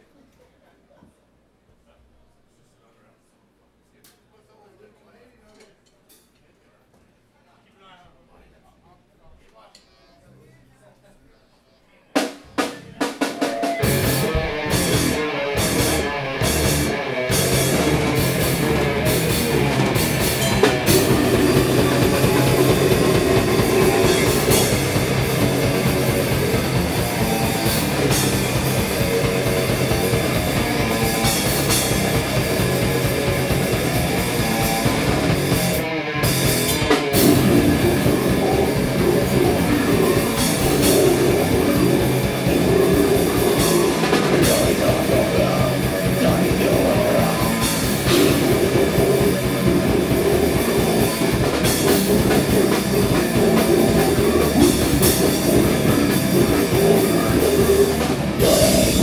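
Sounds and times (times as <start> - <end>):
heavy metal band playing: 12.6 - 59.0
distorted electric guitar: 13.2 - 59.0.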